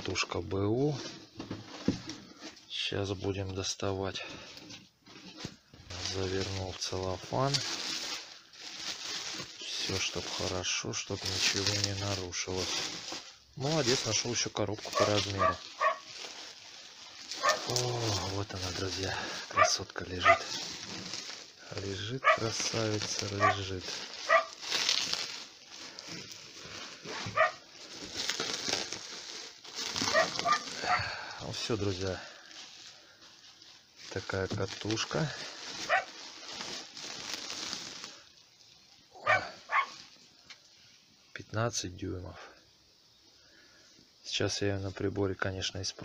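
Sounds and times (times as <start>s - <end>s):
bubble wrap and cellophane crinkling: 0.0s - 42.1s.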